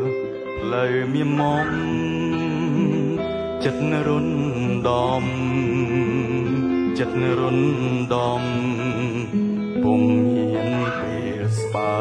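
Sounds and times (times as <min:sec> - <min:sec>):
acoustic guitar chords: 0:00.0 - 0:12.0
man singing with vibrato: 0:00.0 - 0:12.0.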